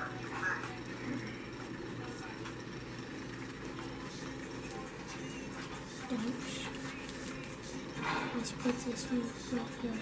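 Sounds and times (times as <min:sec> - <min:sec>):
room noise hum: 0:00.0 - 0:10.0.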